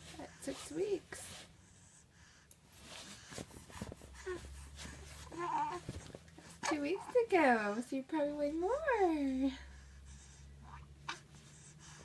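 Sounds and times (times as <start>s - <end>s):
baby cooing: 5.2s - 5.9s.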